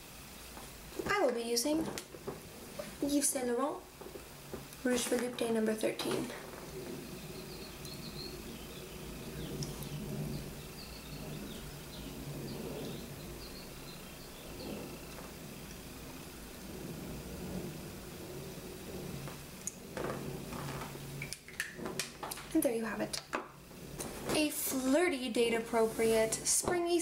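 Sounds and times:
low hum: 0:00.0 - 0:26.9.

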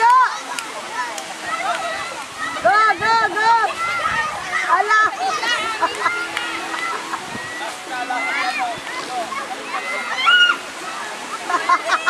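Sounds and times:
surf hissing: 0:00.0 - 0:12.0
children and women shouting: 0:01.4 - 0:11.1.

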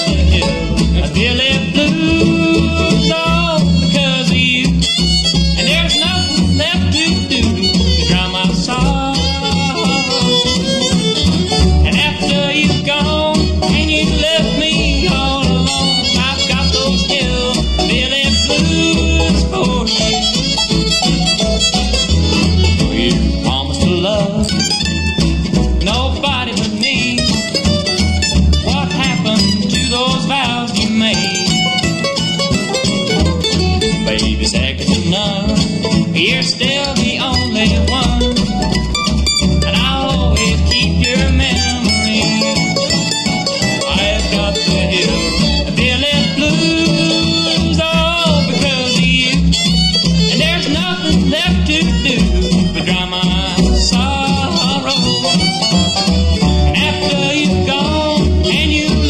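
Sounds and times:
bluegrass band playing: 0:00.0 - 0:59.0
fiddle melody: 0:00.0 - 0:59.0
mandolin break: 0:00.0 - 0:59.0.

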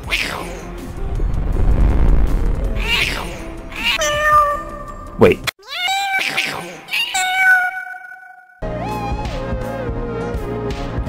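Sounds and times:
cat meowing: 0:03.8 - 0:05.0, 0:05.6 - 0:08.2.

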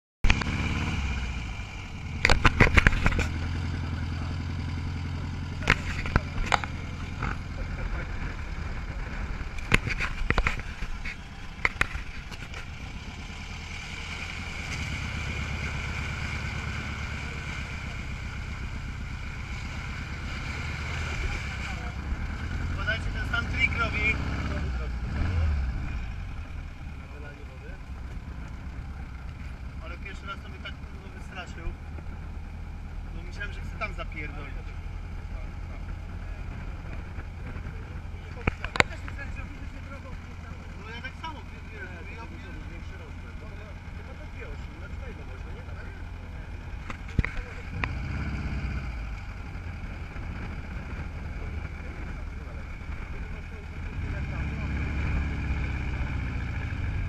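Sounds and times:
buggy engine running: 0:00.2 - 0:57.0
sharp knocks from bumps: 0:02.2 - 0:03.4
water rushing and splashing: 0:13.4 - 0:22.0.

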